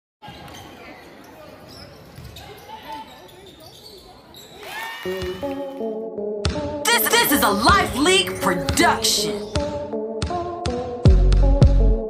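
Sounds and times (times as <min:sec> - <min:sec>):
voices of players and spectators: 0:00.2 - 0:05.5, 0:06.9 - 0:09.6.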